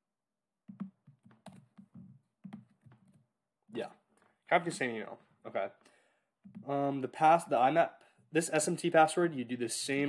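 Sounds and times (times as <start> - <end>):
typing on computer keyboard: 0.7 - 3.2.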